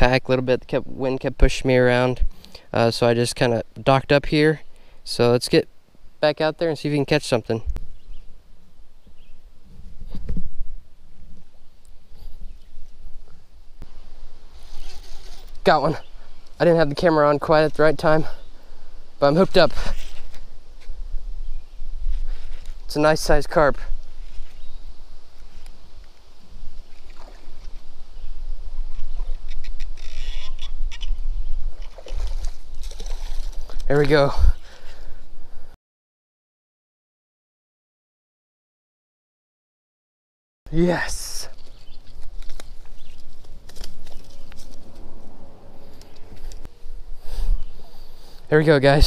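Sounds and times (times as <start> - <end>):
wind rumbling on microphone: 7.6 - 16.6, 18.4 - 35.7, 41.6 - 48.3.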